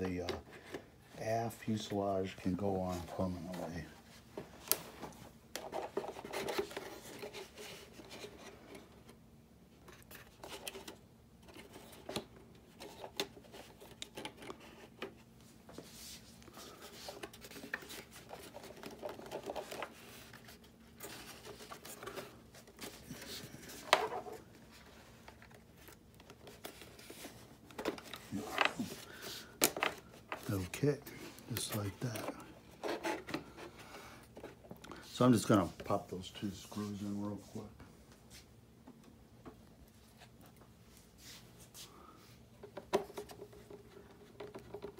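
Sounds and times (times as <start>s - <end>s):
plastic parts rubbing and scraping: 15.8s - 37.0s.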